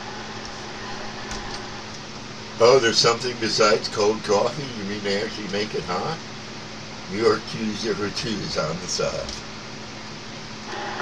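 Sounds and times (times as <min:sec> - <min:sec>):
low steady hum: 0:00.0 - 0:11.0
radio static hiss: 0:00.0 - 0:11.0.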